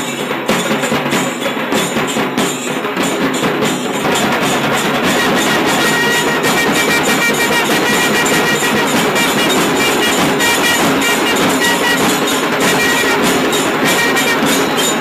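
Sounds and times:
drum beat: 0.0 - 15.0
brass horns blaring: 4.1 - 15.0.

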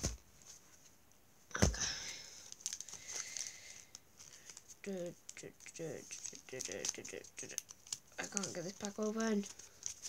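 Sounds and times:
card packet rustling and crinkling: 2.4 - 10.0.

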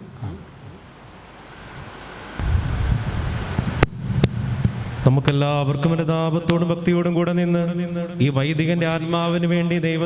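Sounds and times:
wind buffeting microphone: 2.4 - 5.1.

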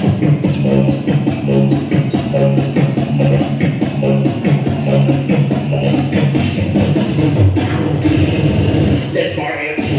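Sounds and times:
beatboxing through a microphone: 0.0 - 9.9.

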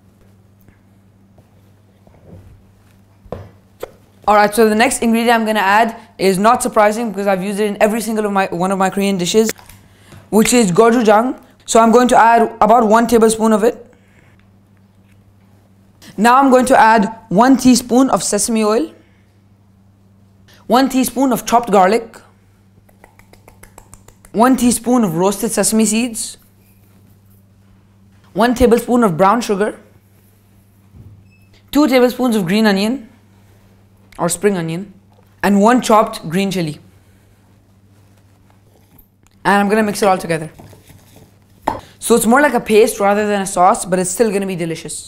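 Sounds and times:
low steady hum: 0.0 - 45.0.

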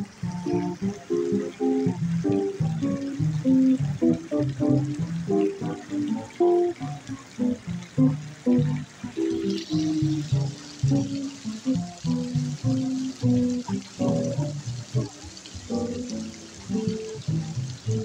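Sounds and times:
archtop guitar accompanying: 0.0 - 18.0
plucked double bass solo: 0.0 - 18.0.

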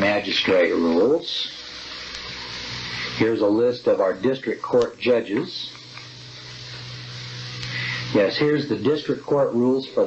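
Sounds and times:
low electrical hum: 0.0 - 10.0
steady tape hiss: 0.0 - 10.0.

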